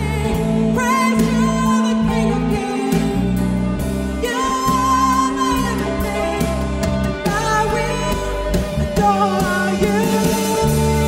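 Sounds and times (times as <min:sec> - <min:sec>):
band playing slow song: 0:00.0 - 0:11.0.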